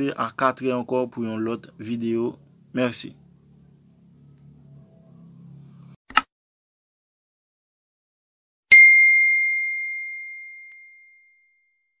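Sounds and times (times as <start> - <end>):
bright bell ding: 8.7 - 11.6.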